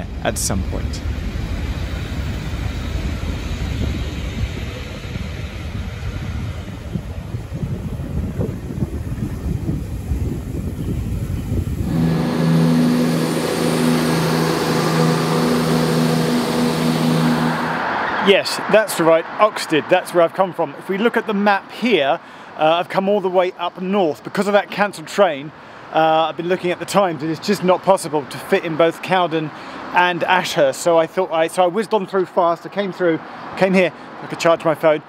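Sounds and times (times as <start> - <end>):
train humming with two low tones: 0.0 - 18.0
steam train rolling past: 0.0 - 20.3.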